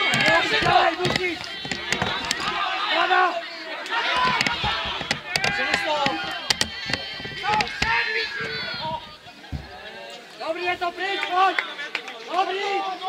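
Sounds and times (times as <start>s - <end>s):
sharp knocks: 0.0s - 2.6s, 4.2s - 9.8s
footballers shouting: 0.0s - 13.0s.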